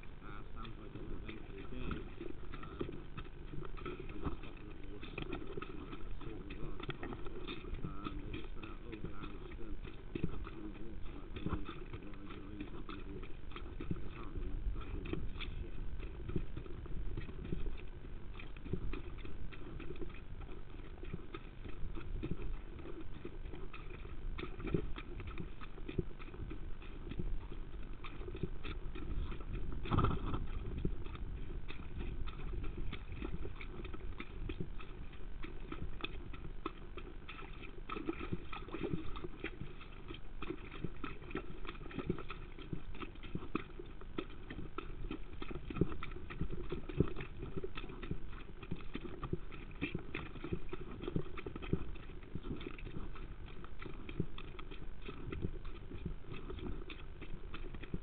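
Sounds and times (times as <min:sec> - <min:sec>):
horse hoofbeats: 0:00.0 - 0:58.0.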